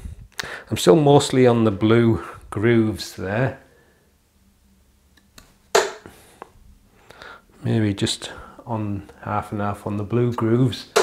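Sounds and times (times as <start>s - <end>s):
dart striking dartboard: 5.7s - 6.0s.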